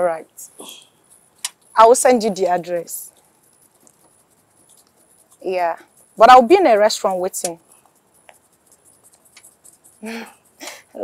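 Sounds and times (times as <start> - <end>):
tiny ticks: 1.1 - 1.8, 7.0 - 10.4.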